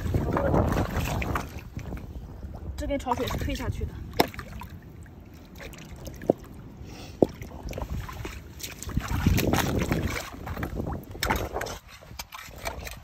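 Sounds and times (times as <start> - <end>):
seawater sloshing around rocks: 0.0 - 13.0
water splashing: 0.0 - 13.0.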